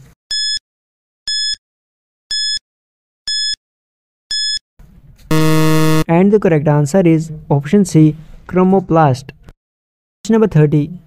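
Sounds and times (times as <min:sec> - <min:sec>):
loud low buzzer: 0:05.3 - 0:06.1
short high electronic beep: 0:05.3 - 0:06.1.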